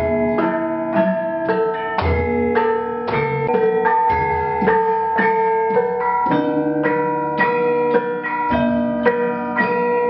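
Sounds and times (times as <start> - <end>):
gamelan metal bars struck: 0.0 - 10.0.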